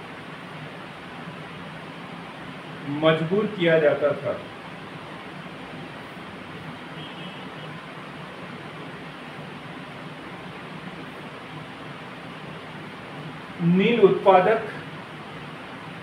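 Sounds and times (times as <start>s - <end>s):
room noise hiss: 0.0s - 16.0s.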